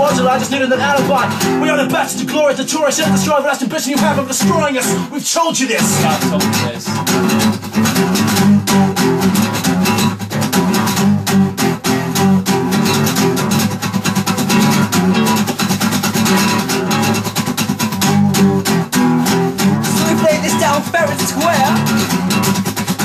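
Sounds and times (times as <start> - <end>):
acoustic guitar strumming: 0.0 - 23.0.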